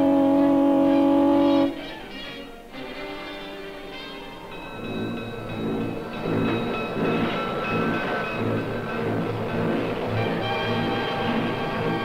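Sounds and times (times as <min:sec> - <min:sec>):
orchestral music: 0:00.0 - 0:12.0
train wheels rumbling: 0:02.8 - 0:12.0.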